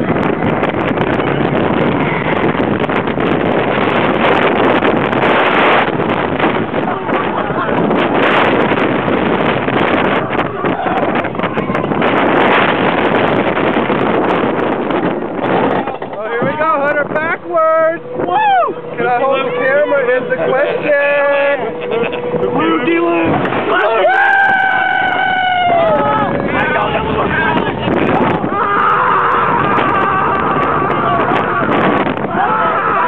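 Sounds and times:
roller coaster rattling on track: 0.0 - 33.0
wind rushing over microphone: 0.0 - 33.0.

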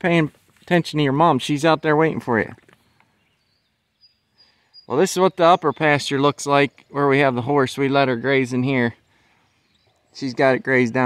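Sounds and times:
man speaking: 0.0 - 2.6, 4.9 - 9.0, 10.2 - 11.0
faint high bird chirps: 2.8 - 11.0.

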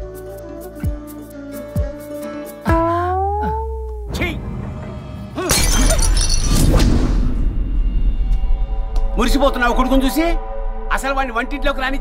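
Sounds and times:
dense orchestral film music: 4.1 - 5.5, 7.0 - 12.0.

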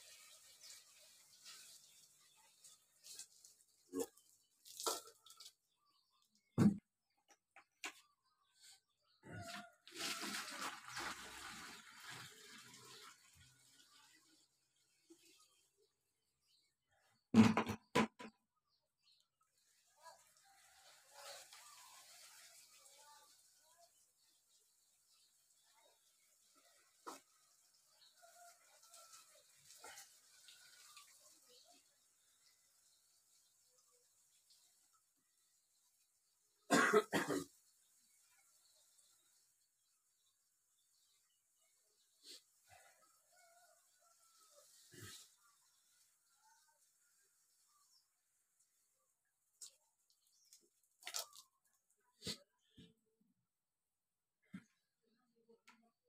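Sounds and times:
water pouring into watering can: 0.0 - 6.2, 9.3 - 16.1, 19.5 - 36.7, 37.4 - 52.0
man coughing: 36.7 - 37.5.

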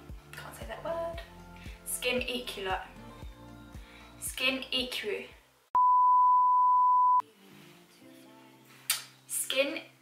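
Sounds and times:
faint music with low notes: 0.0 - 5.6, 7.2 - 10.0
test tone beep: 5.8 - 7.2.

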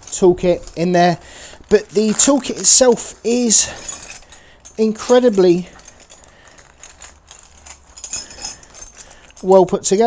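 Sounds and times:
metal tools clinking in bag: 0.0 - 10.0.

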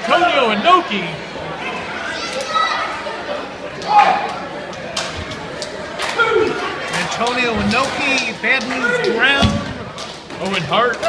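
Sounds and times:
crowd calling out: 0.0 - 11.0
children's high voices: 1.4 - 4.4
loud shout: 1.7 - 3.1, 3.8 - 4.4, 6.1 - 6.8.

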